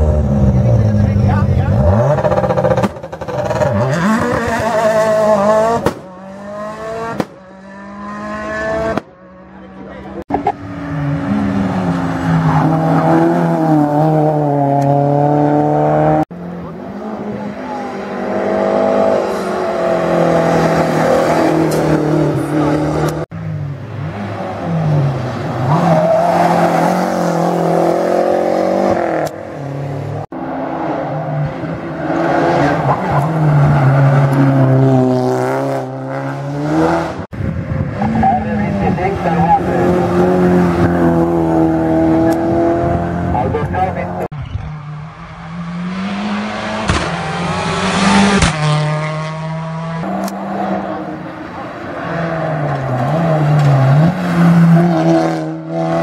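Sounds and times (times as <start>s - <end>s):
race car engines revving uphill: 0.0s - 56.0s.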